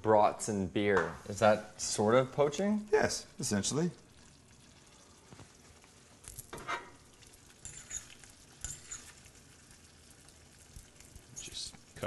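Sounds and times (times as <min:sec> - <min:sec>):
sauce simmering in a saucepan: 0:01.2 - 0:12.0
soft pops and spatters: 0:07.2 - 0:12.0.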